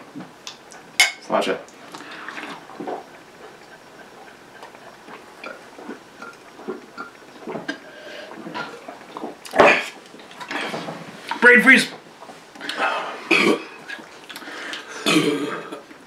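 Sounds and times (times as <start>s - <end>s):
glasses clinking: 1.0s - 1.3s
people gulping beer: 1.7s - 11.6s, 12.3s - 16.0s.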